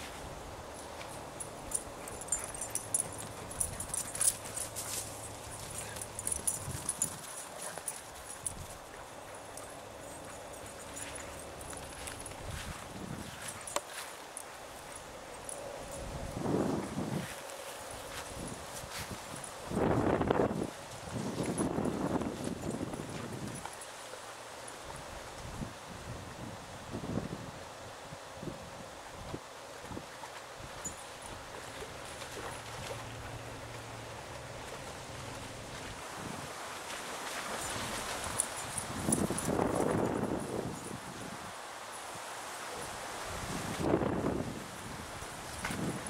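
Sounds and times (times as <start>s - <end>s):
dog paws running through grass: 0.0s - 15.0s, 16.0s - 25.6s, 29.9s - 41.3s.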